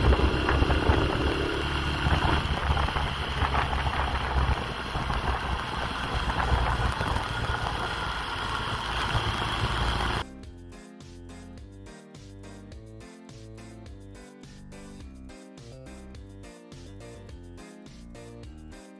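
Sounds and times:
motorcycle engine running: 0.0s - 10.2s
wind buffeting microphone: 0.0s - 10.2s
music: 10.2s - 18.9s.

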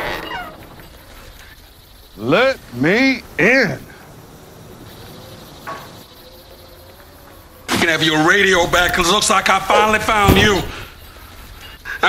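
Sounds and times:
faint insect chirping: 0.0s - 12.0s.

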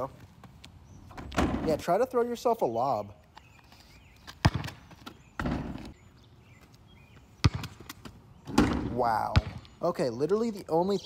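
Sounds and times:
basketball bouncing on asphalt: 0.1s - 1.7s, 3.4s - 9.8s.

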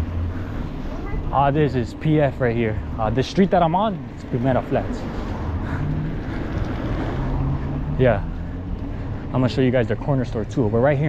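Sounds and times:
bike riding rumble: 0.0s - 11.0s.

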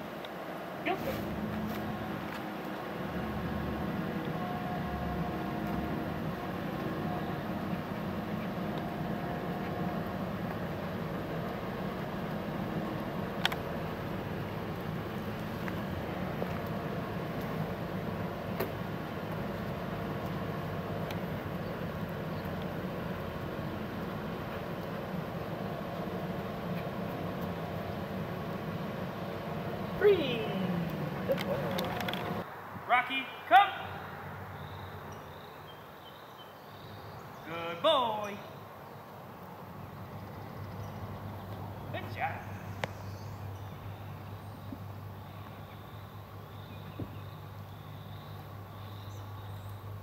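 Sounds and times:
outdoor background rumble: 0.0s - 50.0s
faint sharp clicks: 13.4s - 13.7s.

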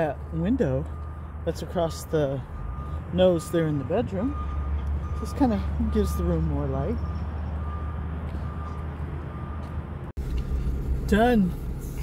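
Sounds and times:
vehicle engine idling: 0.0s - 12.0s
faint high beep: 0.8s - 9.8s.

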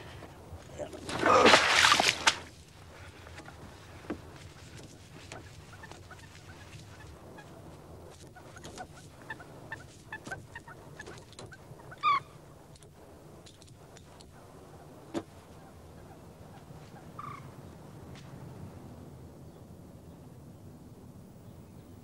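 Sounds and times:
bird harsh call: 11.9s - 12.4s.

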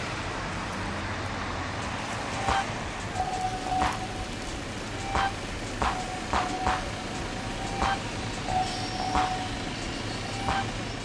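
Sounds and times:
steady background rush: 0.0s - 11.0s.

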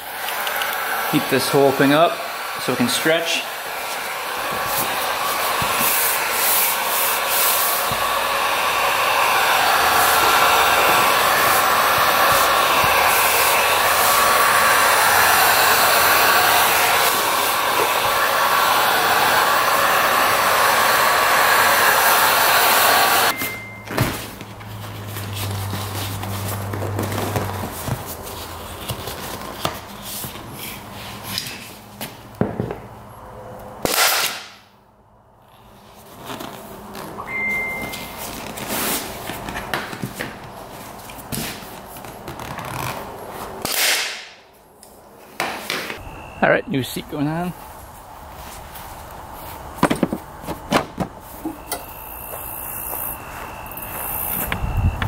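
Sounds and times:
heat gun blowing: 0.0s - 23.6s, 51.4s - 55.0s.

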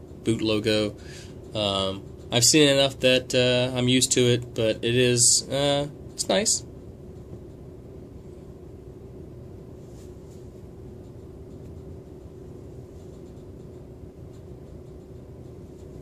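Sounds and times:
low room hum: 0.0s - 16.0s.

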